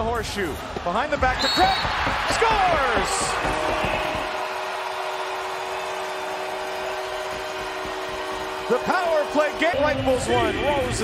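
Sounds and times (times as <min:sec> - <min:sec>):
crowd cheering: 0:00.5 - 0:11.0
goal horn chord: 0:04.9 - 0:11.0.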